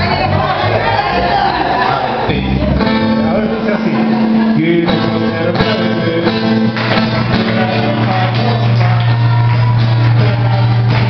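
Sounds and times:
electric bass: 0.0 - 11.0
live band playing cumbia: 2.7 - 11.0
drum kit: 4.9 - 11.0.

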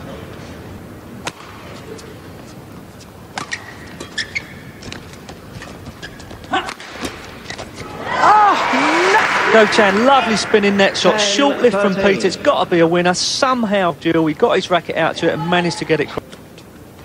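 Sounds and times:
shoes squeaking on court: 1.6 - 7.9
voices: 7.8 - 16.3.

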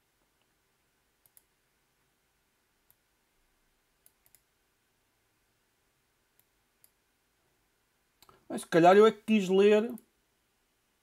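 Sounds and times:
faint computer mouse clicks: 1.2 - 1.5, 2.8 - 3.0, 4.0 - 4.5, 6.4 - 7.0.

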